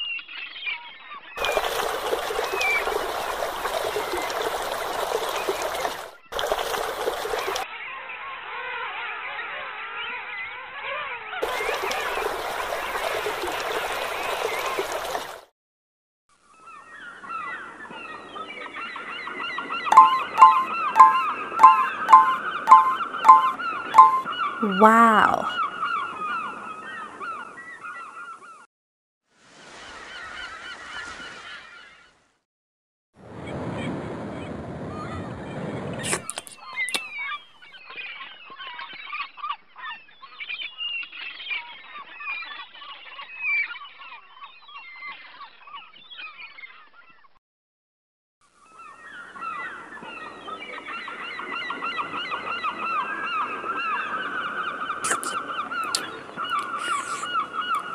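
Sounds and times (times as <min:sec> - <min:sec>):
loud regular bird calls: 0:07.7 - 0:11.4, 0:48.6 - 0:57.9
birds chirping: 0:19.9 - 0:25.5, 0:54.8 - 0:57.9.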